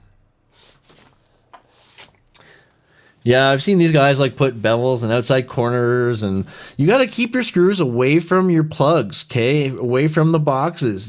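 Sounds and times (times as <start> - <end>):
faint rubbing noises: 0.5 - 2.2.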